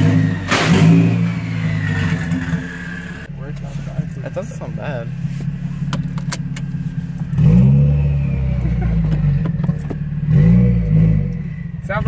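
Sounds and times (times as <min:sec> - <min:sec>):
loud car engine revving: 0:00.0 - 0:03.3, 0:04.0 - 0:12.0.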